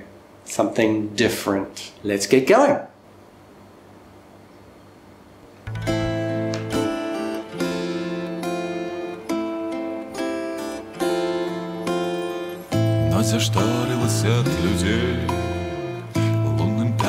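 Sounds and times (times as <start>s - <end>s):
acoustic guitar chords: 5.6s - 17.0s.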